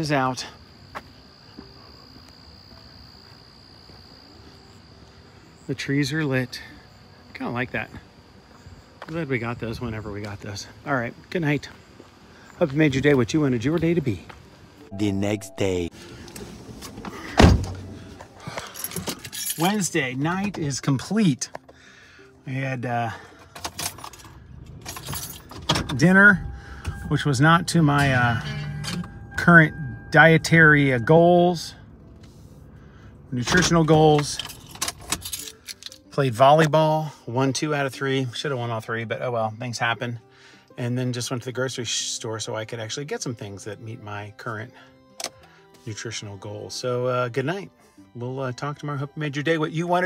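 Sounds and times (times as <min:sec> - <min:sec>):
crickets trilling: 0:00.0 - 0:32.0
keys jangling: 0:18.5 - 0:19.9, 0:23.4 - 0:26.0, 0:34.2 - 0:36.1.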